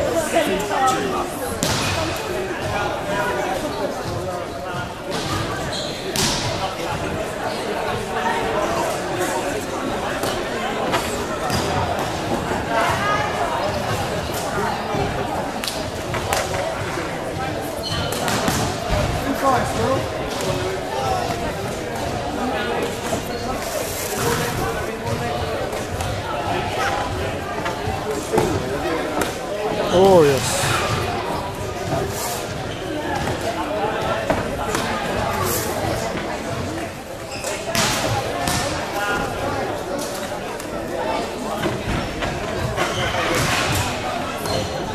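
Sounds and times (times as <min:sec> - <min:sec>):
spectators' voices: 0:00.0 - 0:44.9.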